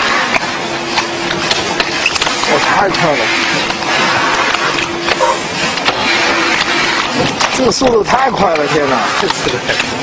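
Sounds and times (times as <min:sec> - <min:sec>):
factory machinery noise: 0:00.0 - 0:10.0.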